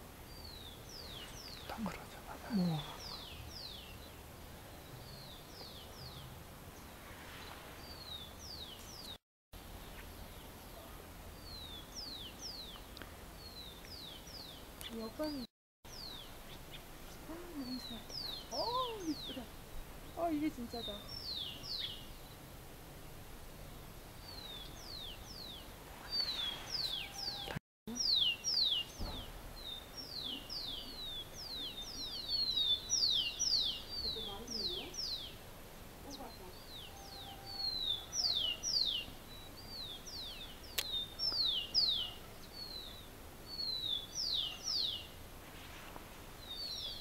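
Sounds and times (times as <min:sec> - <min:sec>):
small birds chirping: 0:00.2 - 0:22.6, 0:23.6 - 0:45.3, 0:46.3 - 0:47.0.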